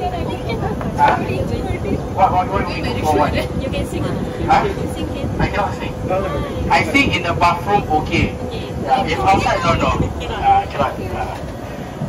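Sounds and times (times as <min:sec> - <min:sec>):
indistinct talking: 0:00.0 - 0:12.0
wind noise on microphone: 0:00.0 - 0:12.0.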